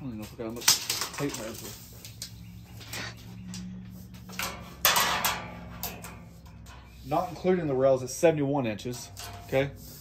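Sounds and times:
tape measure rattling and scraping: 0.0s - 10.0s.

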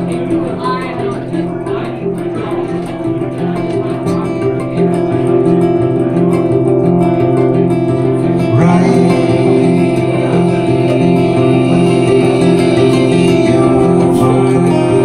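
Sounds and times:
acoustic guitar: 0.0s - 15.0s
mandolin melody: 0.0s - 15.0s.

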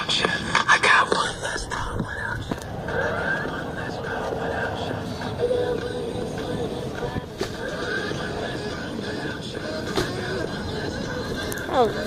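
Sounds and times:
person whispering: 0.4s - 2.6s.

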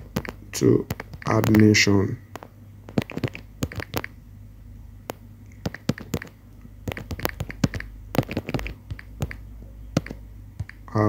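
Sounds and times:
phone keyboard tapping clicks: 0.0s - 1.7s, 2.3s - 4.2s, 5.1s - 9.4s, 10.0s - 10.8s
low steady hum: 0.0s - 11.0s.

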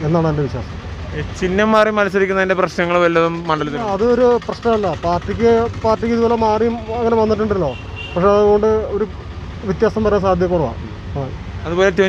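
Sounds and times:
low vehicle rumble: 0.0s - 12.0s
man speaking into a microphone: 0.0s - 12.0s.

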